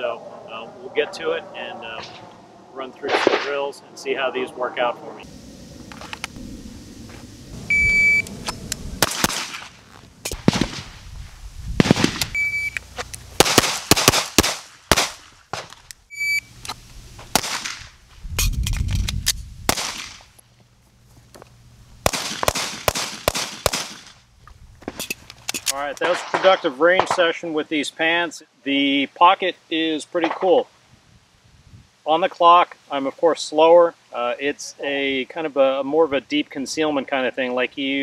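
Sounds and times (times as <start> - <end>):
shot timer beeps: 7.7 - 8.3, 12.3 - 12.8, 16.1 - 16.5
pistol shots: 9.0 - 11.0, 11.8 - 12.3, 13.4 - 15.8, 17.3 - 17.9, 19.7 - 20.2, 22.0 - 24.2.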